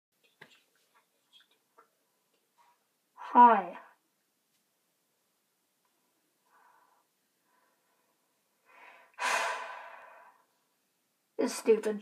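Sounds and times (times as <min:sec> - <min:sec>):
person breathing: 0:06.4 - 0:10.6.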